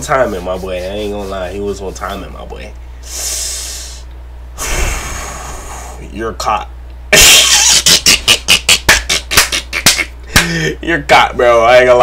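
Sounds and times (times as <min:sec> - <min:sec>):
man laughing hard: 0:07.2 - 0:10.8.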